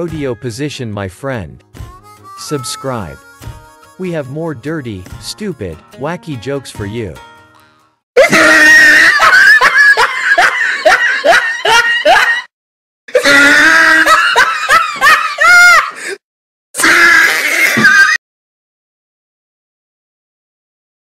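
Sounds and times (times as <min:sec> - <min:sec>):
loud hearty laughter: 0:08.2 - 0:12.5, 0:13.1 - 0:16.2, 0:16.8 - 0:18.2.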